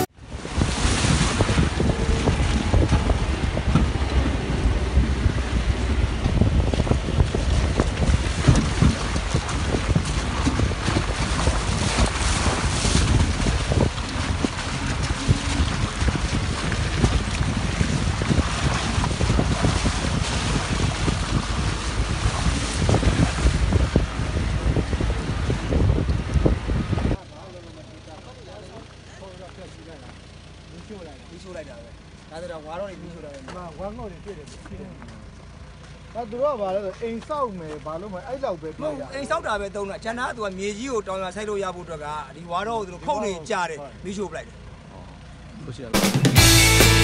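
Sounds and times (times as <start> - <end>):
vehicle knocks and rattles: 0.0 - 27.2
wind buffeting microphone: 0.0 - 27.2
tyres rumbling on dirt road: 0.0 - 47.0.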